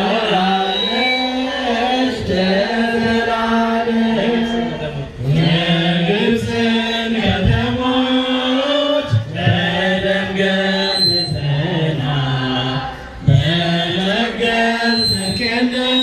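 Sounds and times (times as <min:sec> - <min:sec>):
group chanting a hymn: 0:00.0 - 0:16.0.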